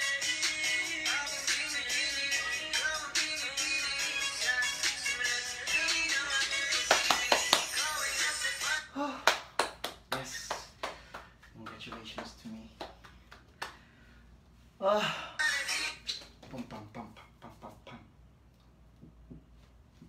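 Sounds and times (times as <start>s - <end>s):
music: 0.0s - 8.8s
hand claps: 6.7s - 8.0s, 9.2s - 13.8s.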